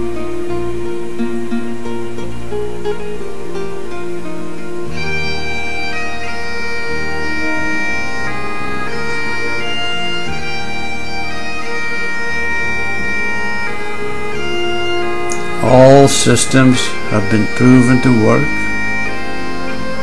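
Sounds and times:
bagpipe drone: 3.4s - 20.0s
bagpipe melody of held notes: 3.8s - 20.0s.

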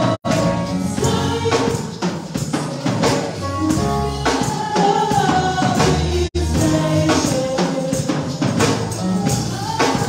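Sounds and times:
electric keyboard: 0.0s - 10.0s
women singing gospel: 0.0s - 10.0s.

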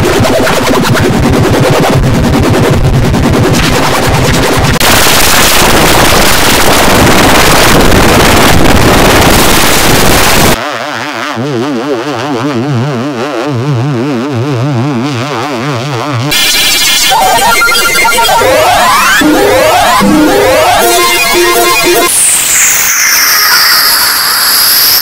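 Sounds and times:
harsh distorted noise: 0.0s - 25.0s
warbling pitched tone: 16.2s - 25.0s.

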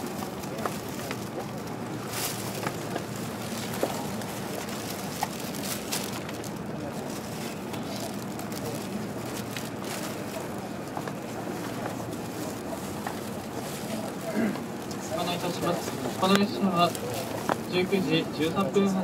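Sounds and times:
electric train interior hum: 0.0s - 19.0s.

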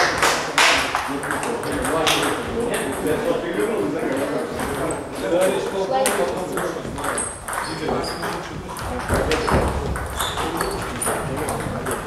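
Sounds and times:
table tennis ball bouncing: 0.0s - 3.7s, 6.0s - 12.0s.

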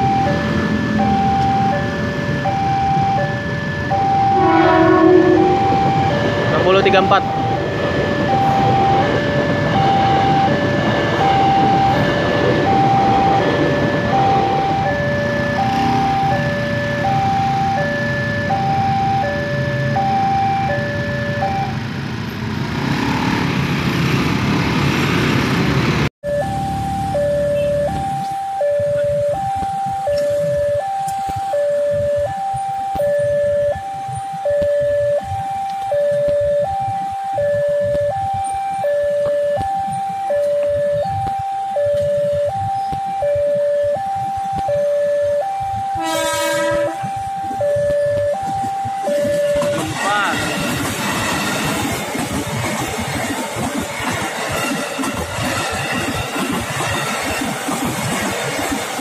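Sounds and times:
two-tone crossing alarm chime: 0.0s - 21.9s, 26.2s - 59.0s
electric train rumbling past: 0.0s - 59.0s.

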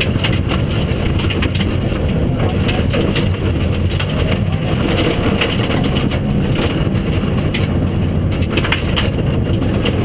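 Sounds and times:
gravel rattling against car: 0.0s - 10.0s
rally car engine running hard: 0.0s - 10.0s.

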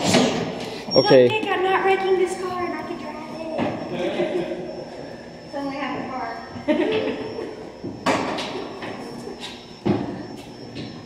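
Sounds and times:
indistinct voices talking: 0.0s - 8.0s.

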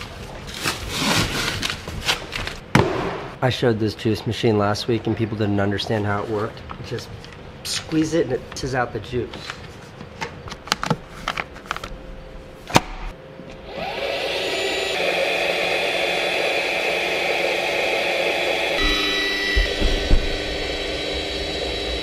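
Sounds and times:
juice press motor running: 13.6s - 22.0s
low thumps: 18.8s - 22.0s.

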